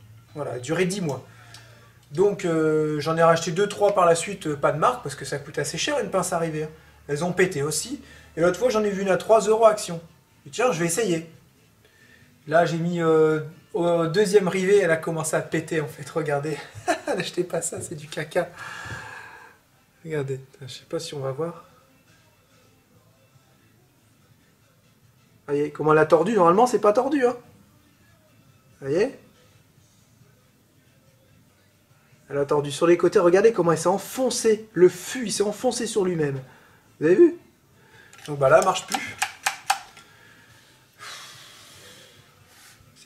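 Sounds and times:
breathy exhale: 18.6s - 19.6s, 40.0s - 42.9s
rivet gun clicks: 38.1s - 40.1s.

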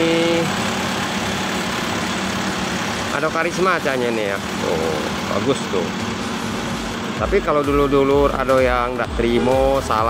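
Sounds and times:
bus diesel engine running: 0.0s - 10.0s.

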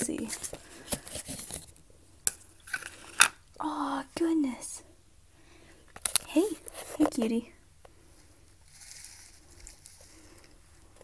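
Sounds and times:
rustling of shredded bedding: 8.0s - 11.0s.

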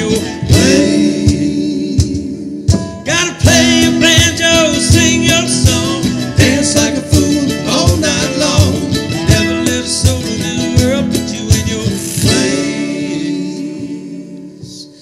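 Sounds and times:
mandolin: 0.0s - 1.6s, 2.7s - 13.8s
acoustic country band playing: 0.0s - 15.0s
percussion beat: 0.0s - 15.0s
strummed acoustic guitar: 0.0s - 15.0s.

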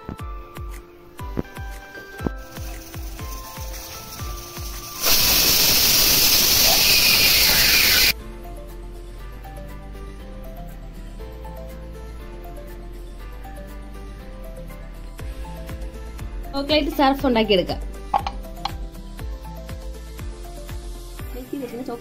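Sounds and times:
background music: 0.0s - 22.0s
pressure cooker steam hiss: 2.4s - 8.2s.

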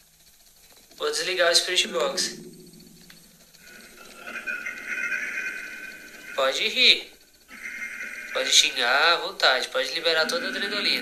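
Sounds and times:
high wavering electronic tone: 1.2s - 11.0s.

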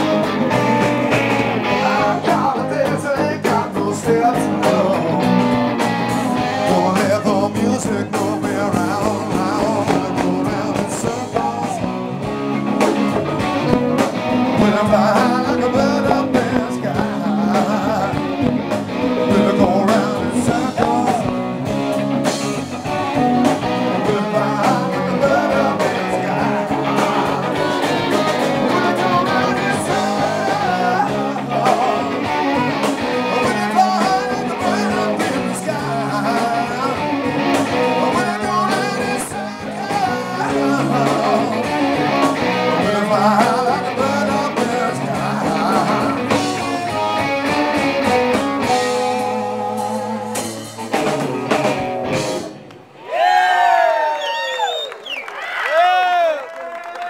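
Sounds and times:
live blues-rock band playing: 0.0s - 53.0s.

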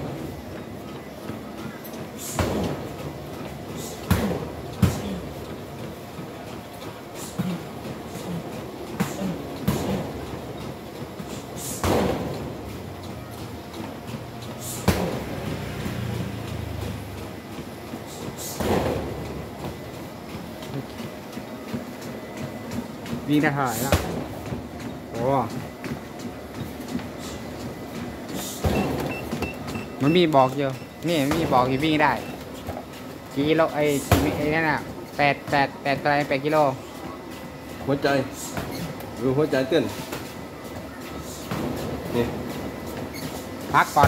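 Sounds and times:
jogger's footfalls: 0.0s - 44.0s
treadmill running: 0.0s - 44.0s.

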